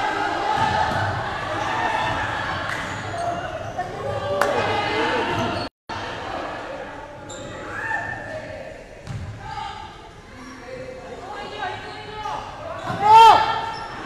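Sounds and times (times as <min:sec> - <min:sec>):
voices of players and spectators: 0:00.0 - 0:14.0
basketball bouncing on wooden court: 0:09.0 - 0:09.3.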